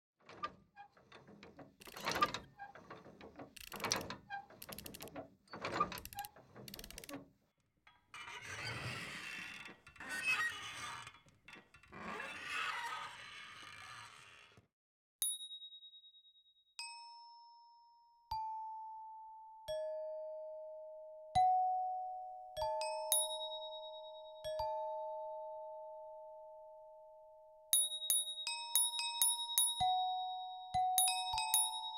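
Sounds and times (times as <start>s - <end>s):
mechanical clicking and rattling: 0.4s - 7.3s
rough scraping noise: 8.0s - 14.7s.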